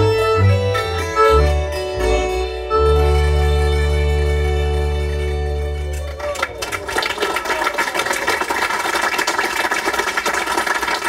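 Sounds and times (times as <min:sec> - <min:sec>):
folk band sustained chord: 0:00.0 - 0:07.2.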